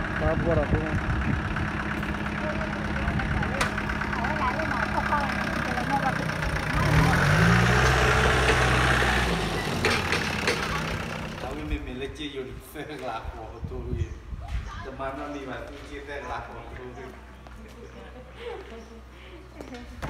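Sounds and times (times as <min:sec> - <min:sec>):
louder engine revving: 0:00.0 - 0:11.7
engine running steadily: 0:00.0 - 0:12.6.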